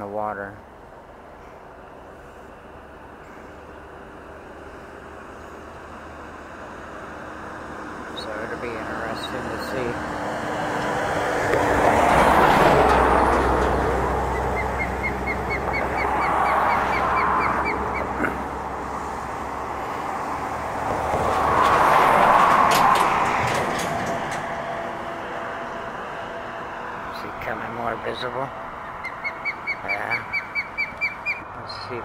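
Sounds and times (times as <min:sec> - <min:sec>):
vehicles passing: 0:00.0 - 0:32.0.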